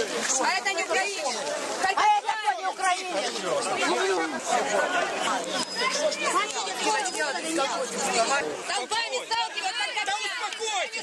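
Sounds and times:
crowd of people talking: 0.0s - 11.0s.

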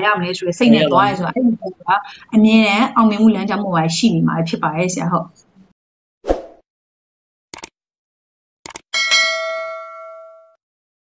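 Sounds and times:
quick clicks: 7.6s - 7.8s, 8.6s - 8.9s
bright bell ding: 9.0s - 10.6s.

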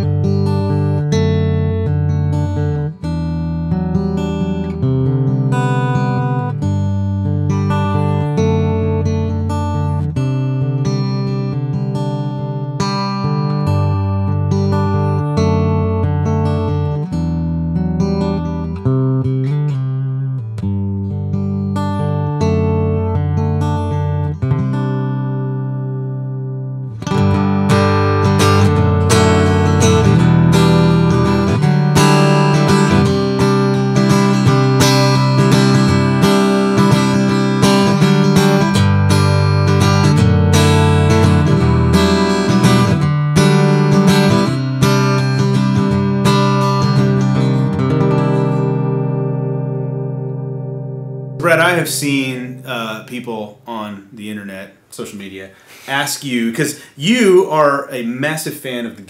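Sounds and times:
acoustic guitar chords: 0.0s - 59.0s
guitar strumming: 0.0s - 59.0s.

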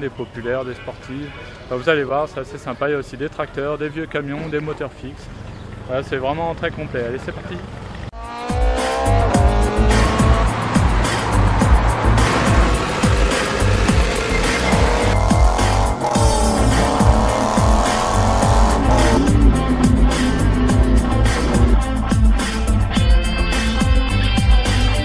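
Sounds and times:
racing car engine revving: 8.2s - 21.7s
music with heavy beat: 8.5s - 25.0s.

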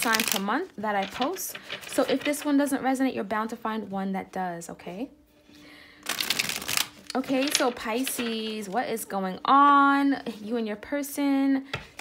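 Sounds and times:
cards being shuffled: 0.0s - 2.6s, 6.1s - 8.8s.

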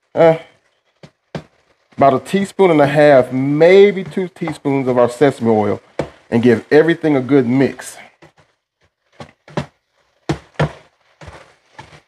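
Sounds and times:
spatula scraping a skillet: 8.2s - 12.0s.

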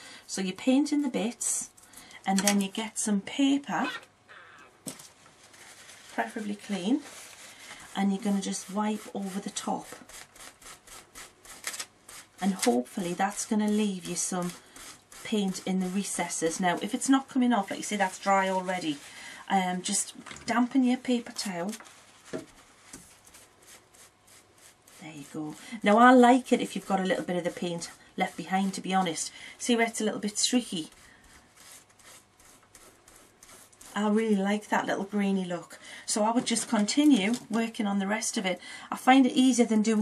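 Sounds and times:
soft rustle: 4.4s - 25.9s, 30.0s - 34.7s
soft handling rustles: 4.8s - 8.0s, 21.3s - 23.5s.

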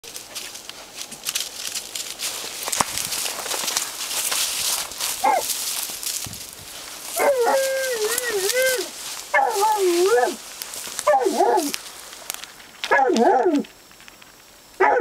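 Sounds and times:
crackling rustle: 0.0s - 15.0s
dog whining and howling: 7.2s - 10.4s, 11.0s - 11.8s, 12.9s - 13.7s.

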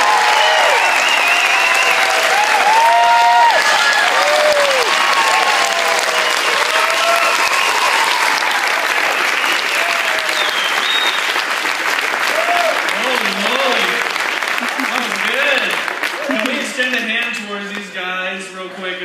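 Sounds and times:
crowd shouts and whoops: 0.0s - 10.8s, 12.3s - 12.9s
crowd applauding: 0.0s - 18.0s.

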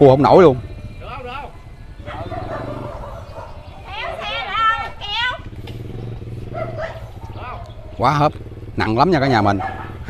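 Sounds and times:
motorbike engine running: 0.0s - 10.0s
dog call: 1.0s - 5.5s, 6.4s - 8.1s, 9.3s - 10.0s.

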